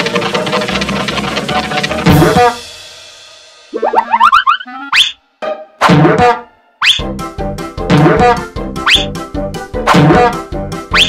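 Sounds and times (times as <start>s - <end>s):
bouncy children's music: 0.0s - 2.7s, 3.7s - 11.0s
cartoon boing glides: 3.7s - 5.2s, 9.9s - 11.0s
sharp upward swoops: 3.7s - 5.2s, 6.8s - 7.0s.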